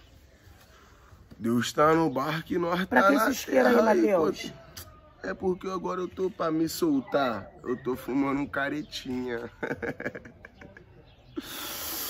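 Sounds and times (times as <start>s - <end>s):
hissing breath through teeth: 11.4s - 12.0s.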